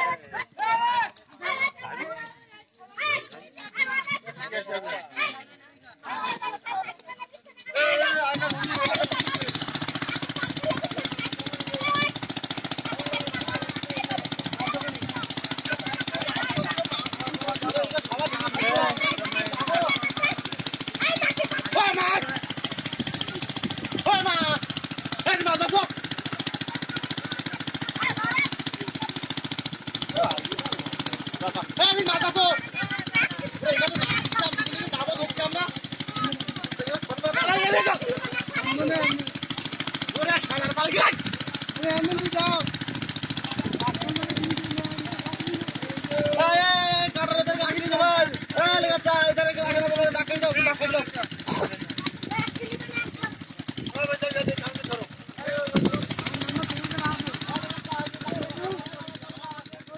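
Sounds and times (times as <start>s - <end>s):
people calling out: 0.0s - 54.1s
small engine knocking: 0.0s - 59.9s.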